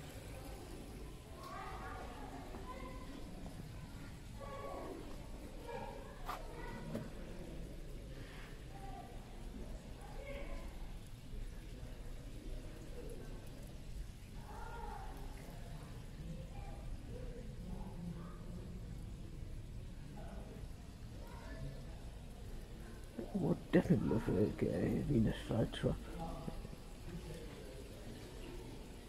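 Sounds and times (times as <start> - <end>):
faint indistinct voices: 0.0 - 29.0.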